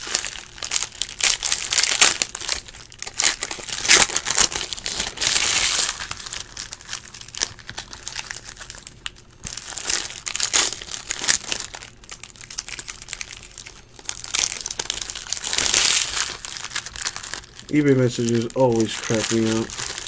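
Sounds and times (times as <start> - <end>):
foil wrappers crinkling and tearing: 0.0 - 20.0.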